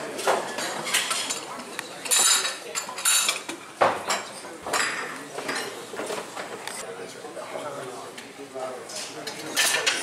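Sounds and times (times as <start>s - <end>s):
dishes and cutlery clattering: 0.0s - 6.6s, 8.9s - 10.0s
room noise: 0.0s - 10.0s.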